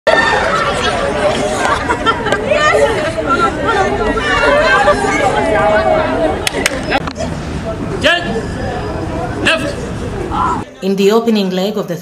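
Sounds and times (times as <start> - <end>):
women chattering and calling out: 0.5 - 6.4.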